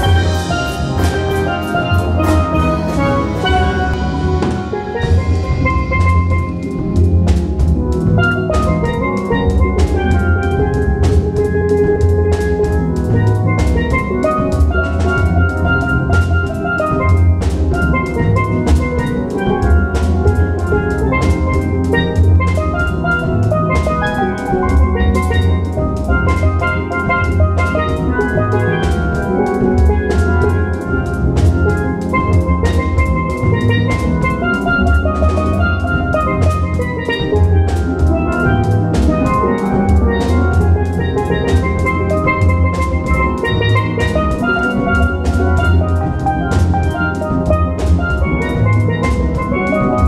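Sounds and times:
deep bass notes: 0.0s - 50.0s
sharp percussion strikes: 0.0s - 50.0s
steel drum band playing: 0.0s - 50.0s.

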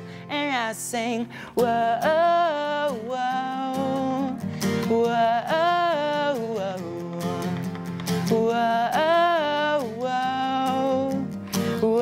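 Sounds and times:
pop song: 0.0s - 12.0s
strummed acoustic guitar: 0.0s - 12.0s.

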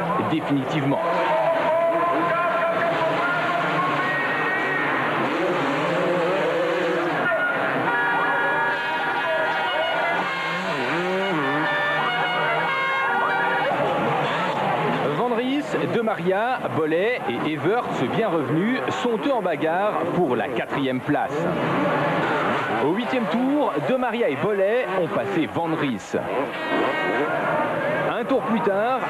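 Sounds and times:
motocross bikes revving: 0.0s - 29.0s.

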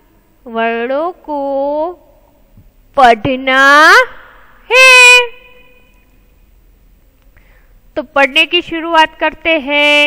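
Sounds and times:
woman's drawn-out spoken word: 3.3s - 5.5s.

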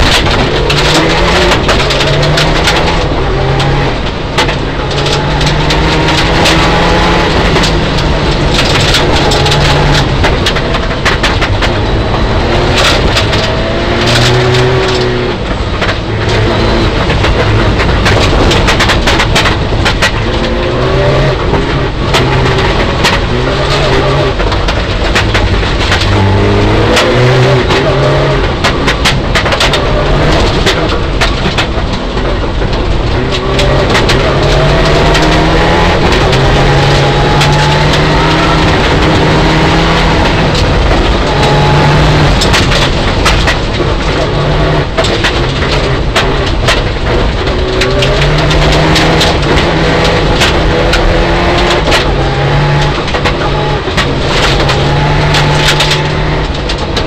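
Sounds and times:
gravel pinging against underbody: 0.0s - 57.0s
rally car engine revving: 0.0s - 57.0s.

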